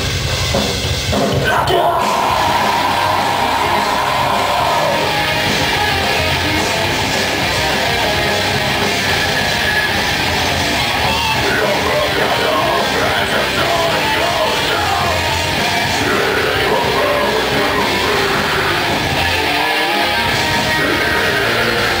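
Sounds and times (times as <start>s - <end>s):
bass guitar: 0.0s - 22.0s
distorted electric guitars: 0.0s - 22.0s
drums: 0.0s - 22.0s.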